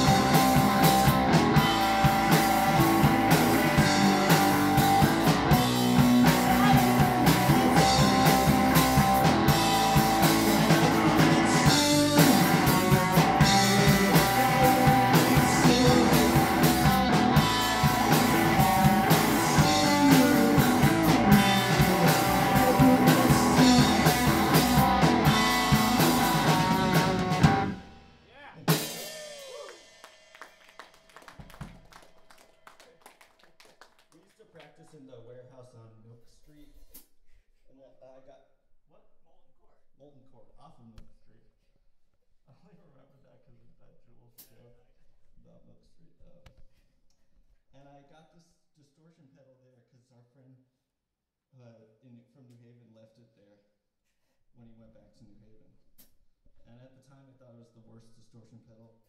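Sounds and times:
electric guitar: 0.0 - 28.1
electric bass: 0.0 - 28.8
drum kit: 0.0 - 33.1.

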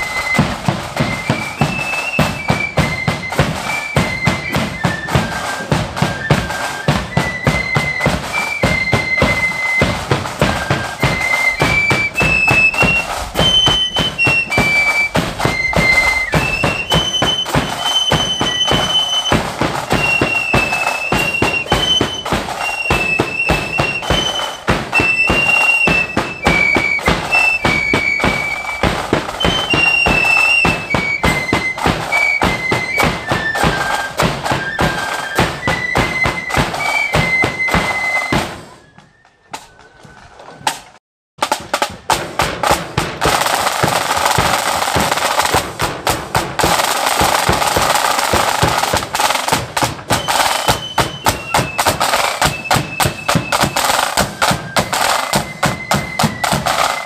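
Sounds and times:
side and bass drums: 0.0 - 38.8, 40.6 - 57.0
marching flute band playing: 0.0 - 57.0.

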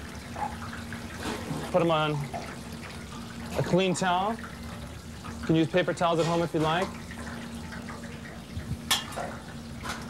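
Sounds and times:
oil bubbling in deep fryer: 0.0 - 10.0.

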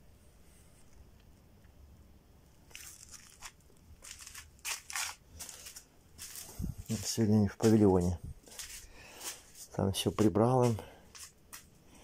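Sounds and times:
crunching and rustling scrapes: 2.7 - 11.7.

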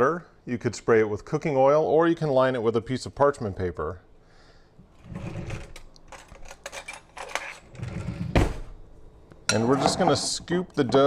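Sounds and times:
kitchen drawer opening: 5.0 - 8.8
metal utensils clinking: 6.1 - 7.8.

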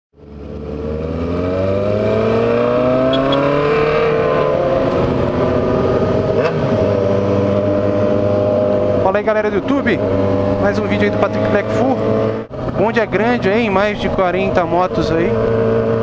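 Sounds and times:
motorcycle engine revving: 0.2 - 16.0.

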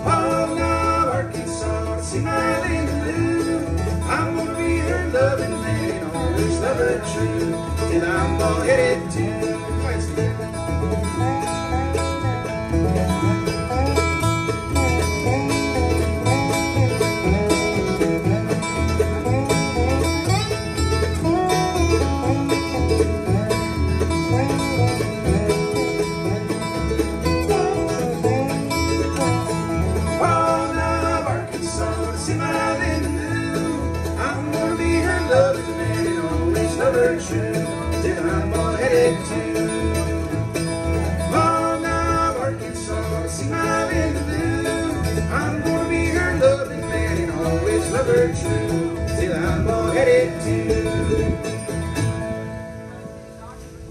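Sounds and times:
person singing: 0.0 - 10.2, 30.0 - 40.2
acoustic guitar: 0.0 - 53.9
fiddle: 0.0 - 53.9
upright bass: 0.0 - 53.9.

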